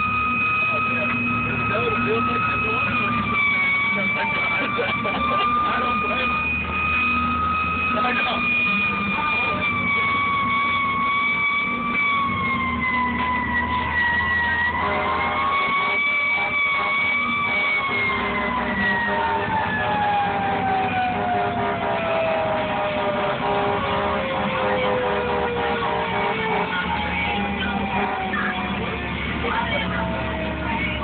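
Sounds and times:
high tone gliding down: 0:00.0 - 0:31.0.

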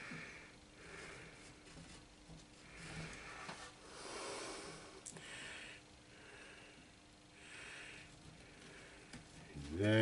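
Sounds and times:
faint slow breathing: 0:00.0 - 0:09.8.

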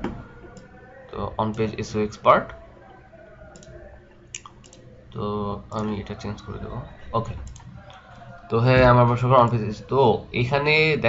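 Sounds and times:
computer mouse clicks: 0:03.5 - 0:04.9, 0:07.4 - 0:08.0.

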